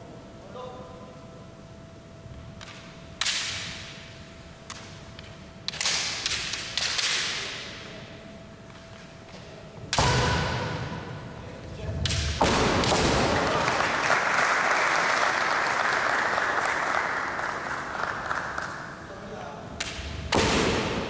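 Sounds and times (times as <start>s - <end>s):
bamboo swords striking: 9.9s - 10.8s, 12.0s - 13.4s, 19.8s - 21.0s.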